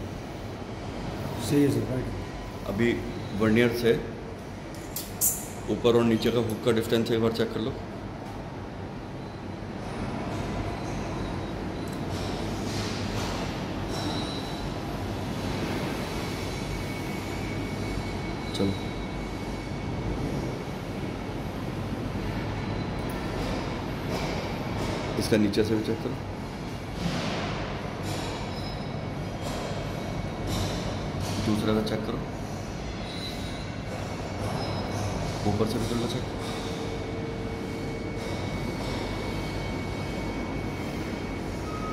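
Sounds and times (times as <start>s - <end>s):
low rumbling background noise: 0.0s - 41.9s.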